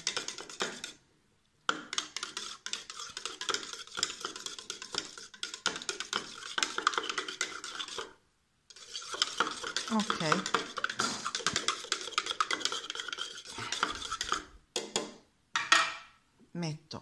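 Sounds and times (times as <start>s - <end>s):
spoon clinking in a cup: 9.1s - 14.4s.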